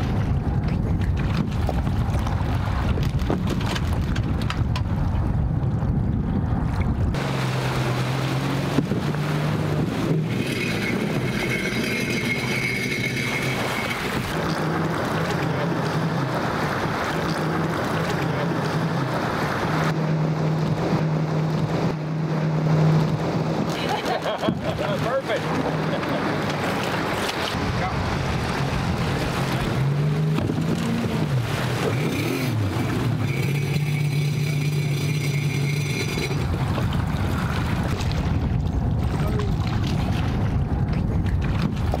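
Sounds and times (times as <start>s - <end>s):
wind buffeting microphone: 0.0s - 17.4s, 20.6s - 33.2s, 36.0s - 42.0s.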